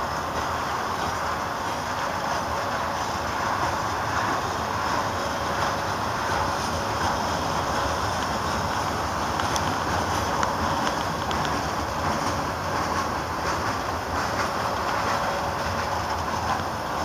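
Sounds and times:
train wheels rolling on rails: 0.0 - 17.0.

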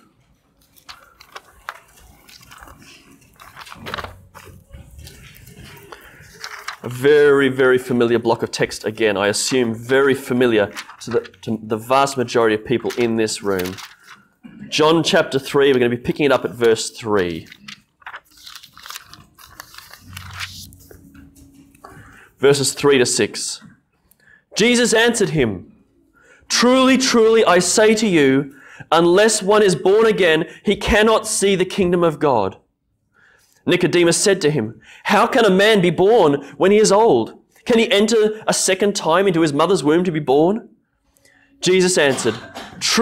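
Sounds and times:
thin pages turning: 0.4 - 7.6, 9.3 - 14.4, 15.3 - 21.8.

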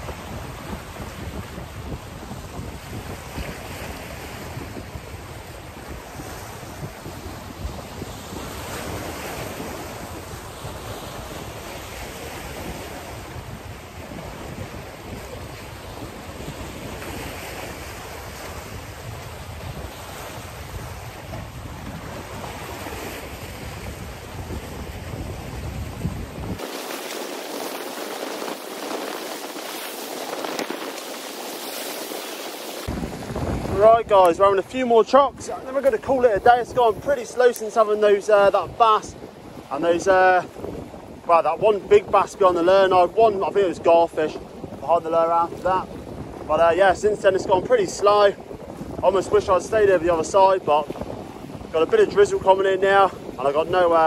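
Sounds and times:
waves breaking over rocks: 0.0 - 54.0
wind buffeting microphone: 0.0 - 54.0.

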